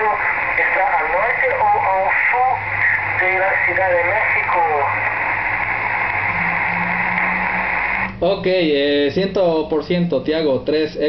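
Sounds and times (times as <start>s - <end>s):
low hum: 0.0s - 8.6s
radio static hiss: 0.0s - 9.3s.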